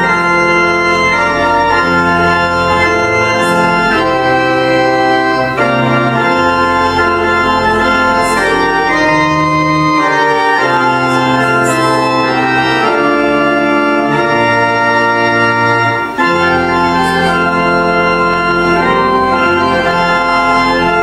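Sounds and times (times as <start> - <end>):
pipe organ playing a hymn: 0.0 - 21.0.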